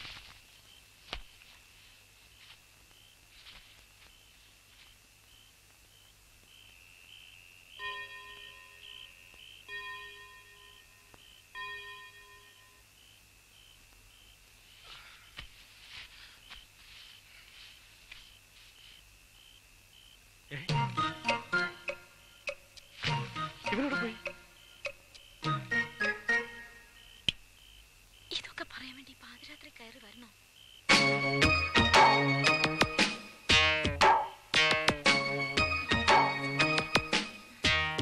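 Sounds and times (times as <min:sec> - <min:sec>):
night insects chirping: 0:00.0 - 0:37.9
bell-like chime: 0:07.8 - 0:08.9, 0:09.7 - 0:12.8.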